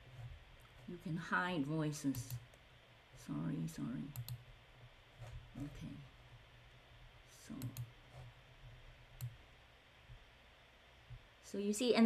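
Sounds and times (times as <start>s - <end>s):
computer mouse clicks: 2.1s - 2.6s, 4.1s - 4.4s, 7.6s - 8.3s, 9.2s - 9.4s.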